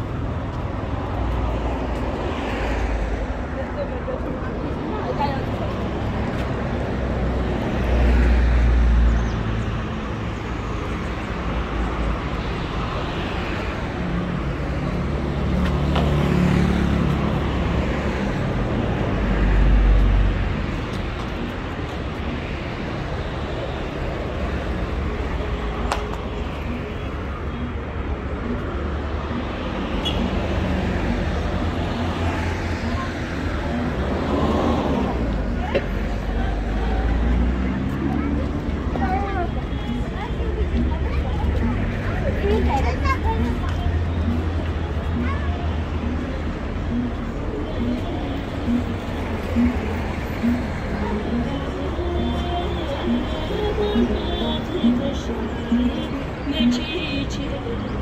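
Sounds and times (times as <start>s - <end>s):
street traffic: 0.0s - 58.0s.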